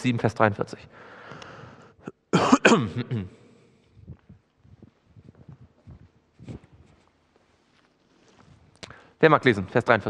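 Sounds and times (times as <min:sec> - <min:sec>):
man coughing: 0:02.0 - 0:03.5.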